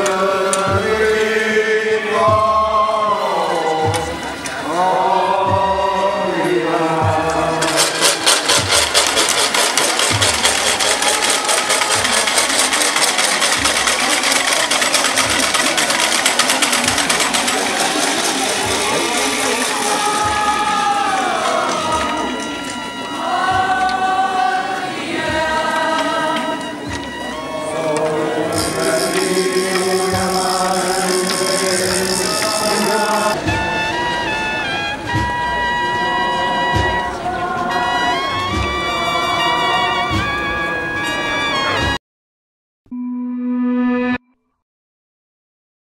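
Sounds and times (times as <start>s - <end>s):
voices singing a chanted hymn: 0.0s - 8.3s, 17.1s - 33.4s, 35.9s - 40.3s
fast dense rattle: 7.6s - 20.3s.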